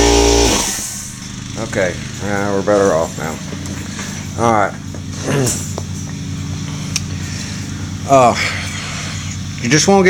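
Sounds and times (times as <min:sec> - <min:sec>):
electric motor humming: 0:00.0 - 0:10.0.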